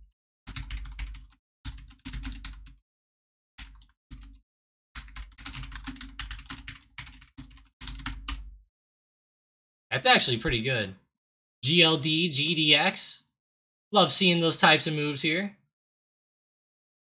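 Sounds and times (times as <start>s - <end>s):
typing on computer keyboard: 0.5s - 2.8s, 3.6s - 4.4s, 5.0s - 8.6s.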